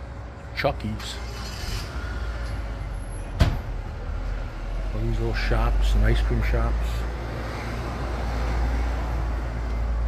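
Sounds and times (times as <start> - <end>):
street traffic rumble: 0.0 - 10.0
sharp clunk: 3.4 - 3.7.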